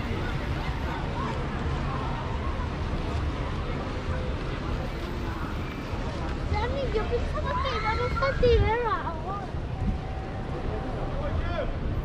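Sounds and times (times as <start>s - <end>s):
faint voices of passersby: 0.0s - 12.0s
wind buffeting microphone: 8.0s - 10.5s.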